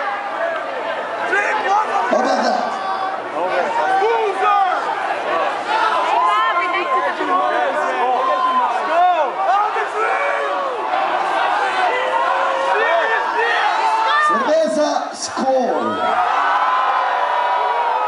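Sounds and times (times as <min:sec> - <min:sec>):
crowd shouting and yelling: 0:00.0 - 0:18.0.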